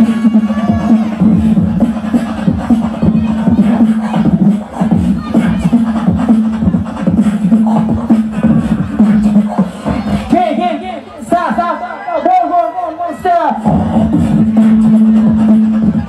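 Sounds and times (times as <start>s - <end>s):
beatboxing drum hits: 0.0s - 10.6s, 13.6s - 16.0s.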